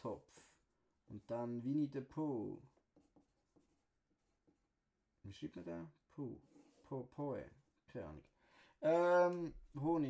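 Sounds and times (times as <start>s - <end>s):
pencil scratching on paper: 0.6s - 5.6s.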